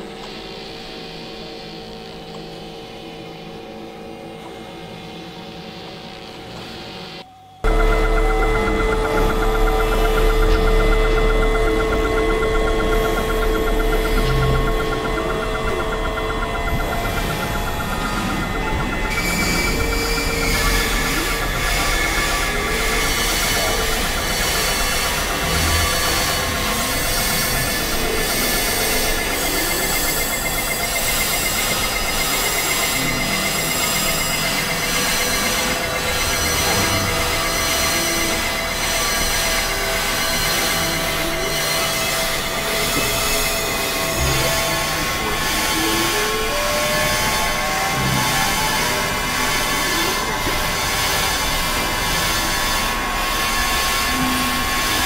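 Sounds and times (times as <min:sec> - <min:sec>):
harsh synthesizer drone: 0:00.0 - 0:55.0.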